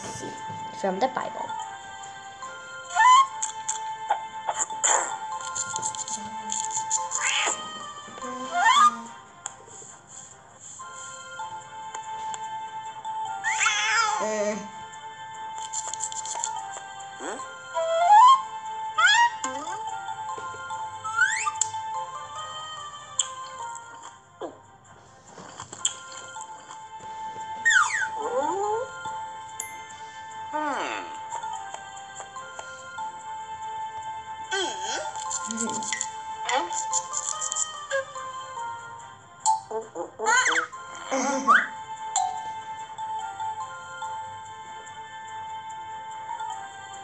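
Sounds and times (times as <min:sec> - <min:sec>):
soft background music: 0:00.0 - 0:47.0
cartoon cat meow: 0:07.2 - 0:09.1, 0:13.4 - 0:14.4, 0:40.1 - 0:41.7.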